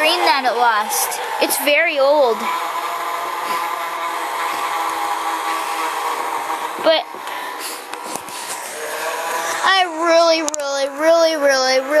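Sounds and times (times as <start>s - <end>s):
small electric motor humming: 0.0s - 12.0s.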